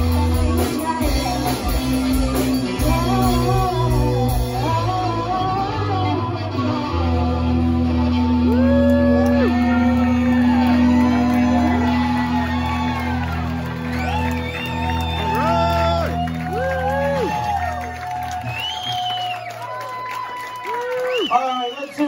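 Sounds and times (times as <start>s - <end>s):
guitars and bass chord ringing: 0.0s - 17.8s
audience whooping and cheering: 8.2s - 22.0s.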